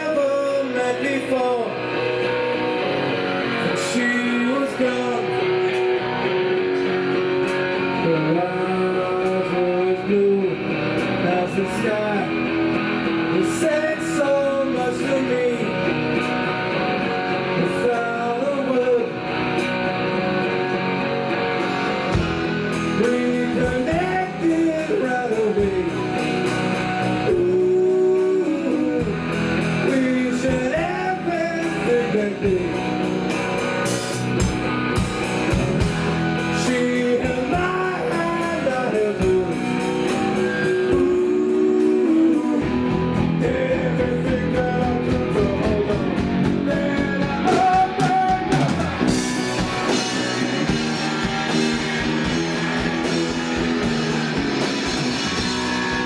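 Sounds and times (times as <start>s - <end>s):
man singing: 0.0s - 2.5s, 3.4s - 7.0s, 7.8s - 16.5s, 17.2s - 19.6s, 22.3s - 33.4s, 35.8s - 53.9s
drum kit: 0.0s - 56.0s
strummed electric guitars: 0.0s - 56.0s.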